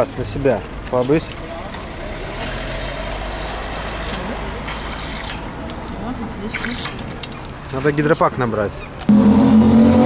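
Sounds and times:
traffic rumble: 0:00.0 - 0:10.0
water running into plastic bottle: 0:02.2 - 0:08.2.

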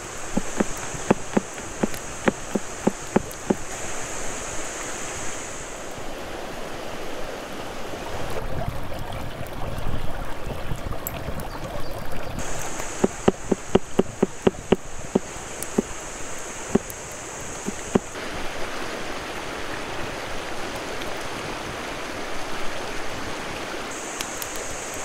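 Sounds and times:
high insect drone: 0:00.0 - 0:05.9, 0:12.4 - 0:18.2
stream water flowing: 0:00.0 - 0:25.0
knife chopping on board: 0:00.4 - 0:03.6, 0:13.0 - 0:14.8.

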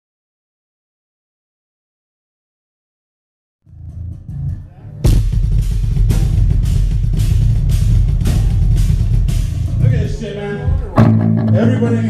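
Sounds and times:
bass guitar: 0:03.6 - 0:12.0
heavy drums: 0:03.7 - 0:12.0
live band playing: 0:04.7 - 0:12.0.

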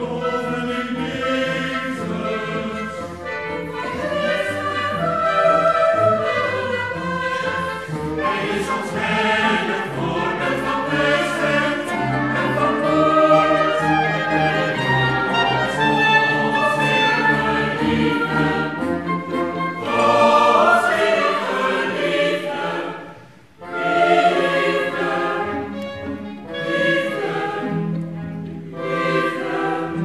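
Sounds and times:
mixed choir singing: 0:00.0 - 0:28.0, 0:28.7 - 0:30.0
chamber orchestra: 0:00.0 - 0:30.0.

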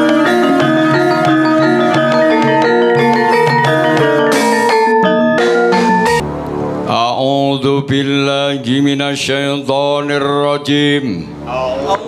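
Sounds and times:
man chanting into a microphone: 0:06.9 - 0:11.4.

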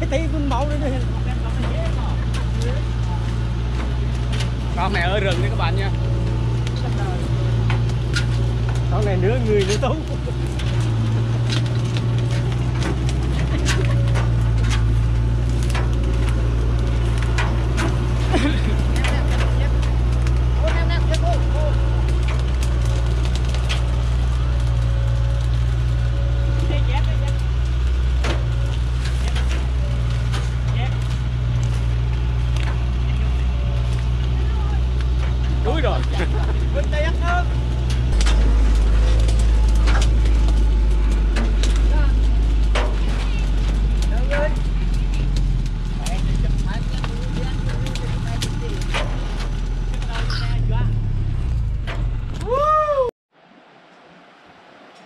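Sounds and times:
diesel truck engine idling: 0:00.0 - 0:52.4.

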